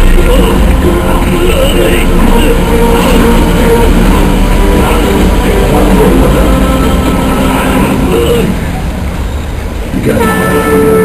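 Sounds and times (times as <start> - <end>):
sustained horn-like tone: 0.0 - 8.7, 10.0 - 11.0
dramatic background music: 0.1 - 8.4.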